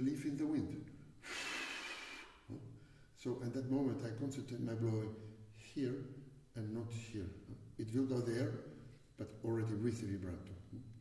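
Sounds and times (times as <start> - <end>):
man blowing out breath: 1.2 - 3.1.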